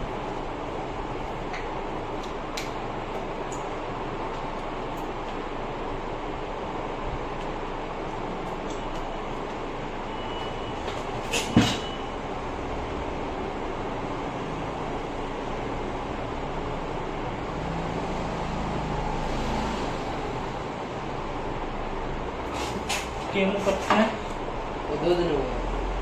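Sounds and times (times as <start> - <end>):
fan whooshing: 0.0 - 26.0.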